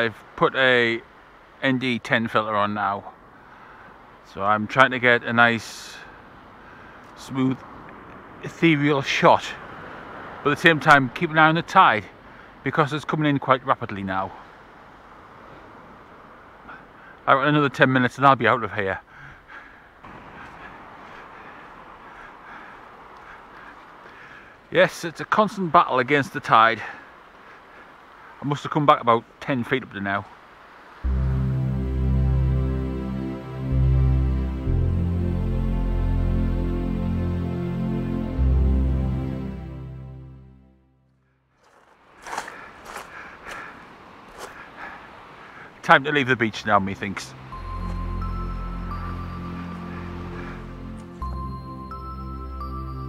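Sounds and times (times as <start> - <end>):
waves washing onto beach: 0.0 - 33.8, 41.6 - 53.0
footsteps on pebbles: 41.6 - 44.6.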